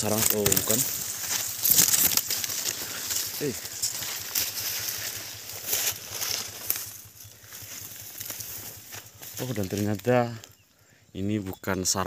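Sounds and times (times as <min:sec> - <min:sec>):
dry grass and leaves rustling: 0:00.0 - 0:11.0.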